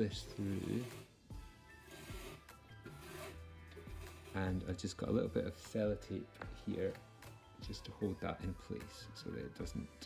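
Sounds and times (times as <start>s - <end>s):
twine rubbing through cardboard: 0.0s - 1.1s, 1.8s - 4.8s
quiet background music: 0.0s - 10.0s.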